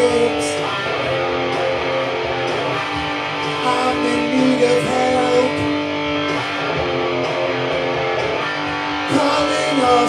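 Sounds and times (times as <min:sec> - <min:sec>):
rock guitar chords ringing: 0:00.0 - 0:10.0.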